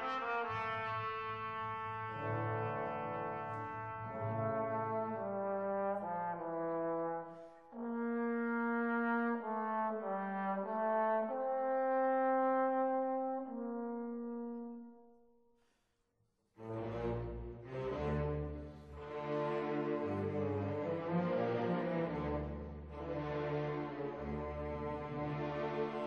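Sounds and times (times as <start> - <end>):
classical brass music: 0.0 - 15.2, 16.6 - 26.0.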